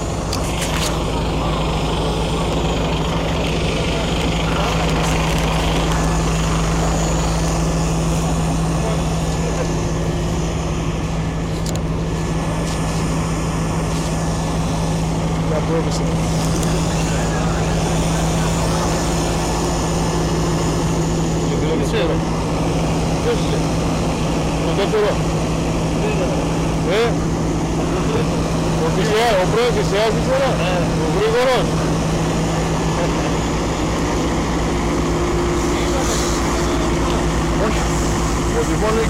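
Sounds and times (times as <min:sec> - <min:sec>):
fire engine running: 0:00.0 - 0:39.0
indistinct voices: 0:00.0 - 0:39.0.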